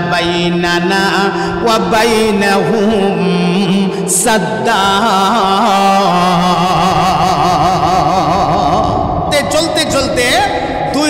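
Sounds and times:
man chanting melodic recitation: 0:00.0 - 0:11.0.

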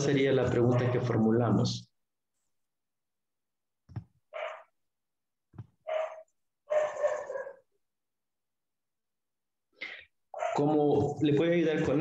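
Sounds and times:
dog barking: 0:00.6 - 0:01.0, 0:04.3 - 0:04.7, 0:05.8 - 0:07.7, 0:10.3 - 0:10.8.

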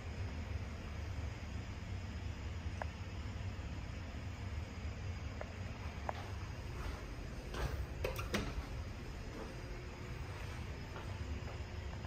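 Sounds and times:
low room ambience rumble: 0:00.0 - 0:12.0
elevator button clicks: 0:08.0 - 0:08.6.

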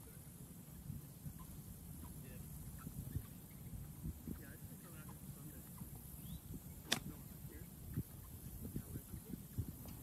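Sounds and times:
golf club striking ball: 0:06.8 - 0:07.2.

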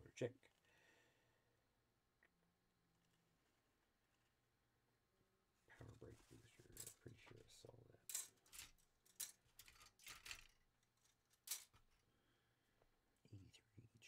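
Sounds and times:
plastic parts clicking and snipping: 0:08.1 - 0:10.6.

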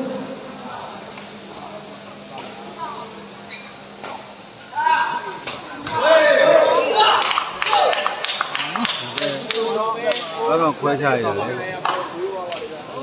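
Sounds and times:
people shouting: 0:04.7 - 0:08.8.

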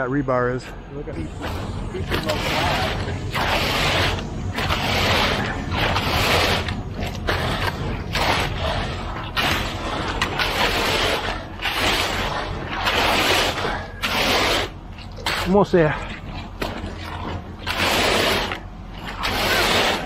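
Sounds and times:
pump engine humming: 0:01.2 - 0:20.0
rake scraping wet concrete: 0:01.2 - 0:20.0.

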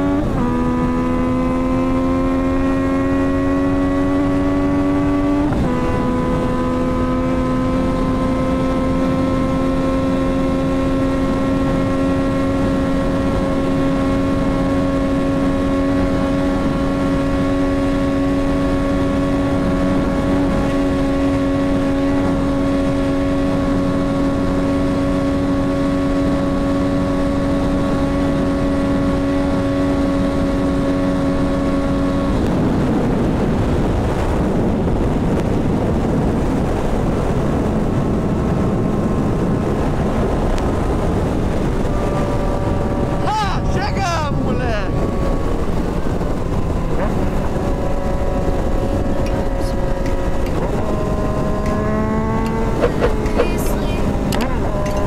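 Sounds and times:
motorcycle engine at high revs: 0:00.0 - 0:55.0.

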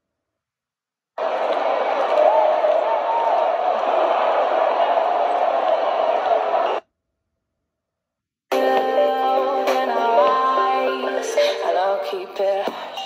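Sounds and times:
stadium crowd noise through laptop speakers: 0:01.2 - 0:06.8.

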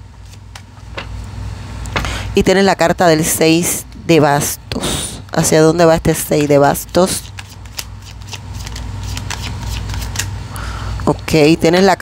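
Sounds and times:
cards being shuffled: 0:00.2 - 0:01.1, 0:07.0 - 0:10.4.

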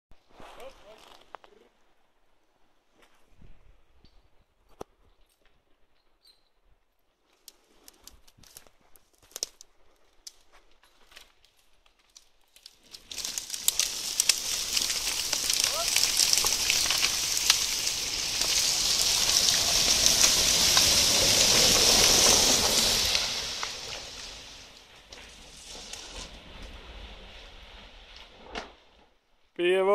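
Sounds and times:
log dragging through brush: 0:00.1 - 0:01.7, 0:07.2 - 0:29.4
twigs snapping: 0:07.4 - 0:21.5.

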